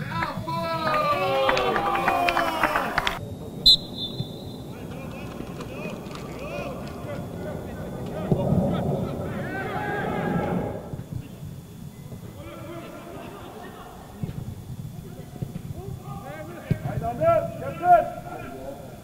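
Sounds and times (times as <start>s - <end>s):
players shouting calls: 0.0s - 11.4s, 12.1s - 14.3s, 15.1s - 19.0s.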